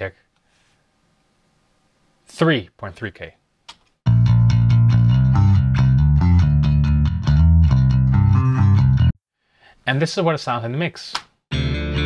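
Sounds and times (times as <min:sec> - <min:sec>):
electric bass guitar riff: 0:04.1 - 0:09.2, 0:11.5 - 0:12.0.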